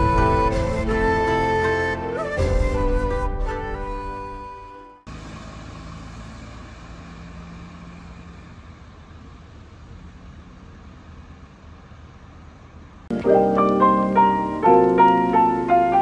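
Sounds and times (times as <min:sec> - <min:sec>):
background music: 0:00.0 - 0:05.1, 0:13.1 - 0:16.0
small car driving away: 0:05.1 - 0:16.0.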